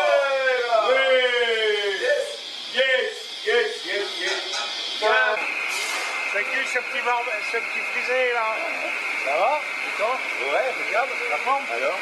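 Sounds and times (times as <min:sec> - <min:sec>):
high-pitched whine: 0:00.0 - 0:12.0.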